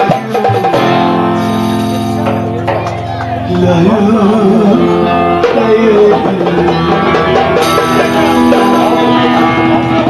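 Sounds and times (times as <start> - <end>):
person singing: 1.4 - 10.0.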